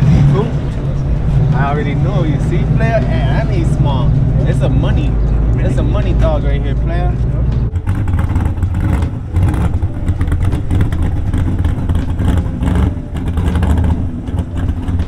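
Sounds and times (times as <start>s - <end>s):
car engine choppy idle: 0.0s - 15.0s.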